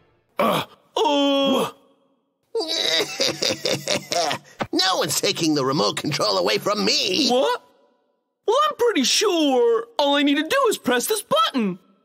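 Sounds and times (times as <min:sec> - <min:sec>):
cartoon character groaning: 0:02.6 - 0:04.5.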